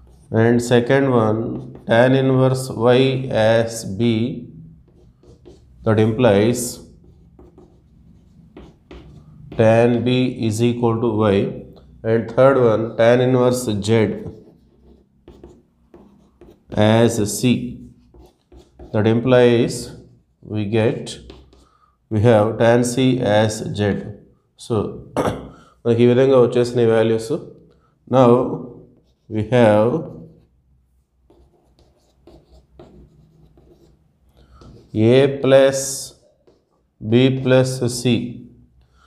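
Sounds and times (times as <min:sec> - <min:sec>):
chalk writing on blackboard: 0:00.0 - 0:02.6, 0:04.6 - 0:10.1, 0:11.8 - 0:20.2, 0:21.0 - 0:21.8, 0:28.7 - 0:37.5.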